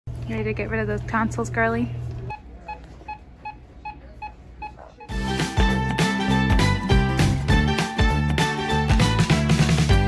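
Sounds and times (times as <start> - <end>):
patient monitor pulse beeps: 2.3 - 5.2.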